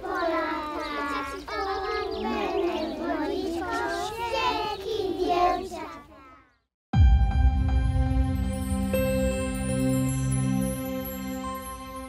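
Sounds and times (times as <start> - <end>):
children singing together: 0.0 - 6.4.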